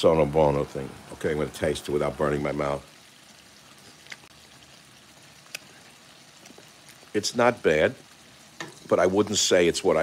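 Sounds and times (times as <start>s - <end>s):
seafood frying in oil: 0.0s - 10.0s.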